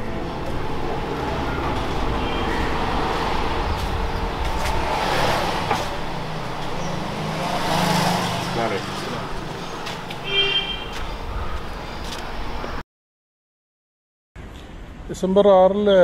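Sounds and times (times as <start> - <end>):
traffic noise: 0.0 - 12.8, 14.4 - 16.0
vehicle rumble passing: 0.0 - 12.8.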